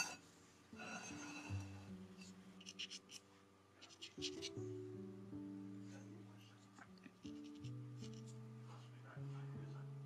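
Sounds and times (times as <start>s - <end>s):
soft background music: 0.0s - 10.0s
pencil scratching on paper: 2.6s - 3.2s, 3.8s - 4.6s, 7.3s - 8.4s.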